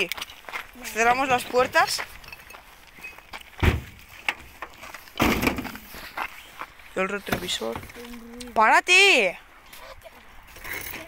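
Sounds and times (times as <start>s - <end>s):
car doors thumping shut: 3.6s - 4.0s.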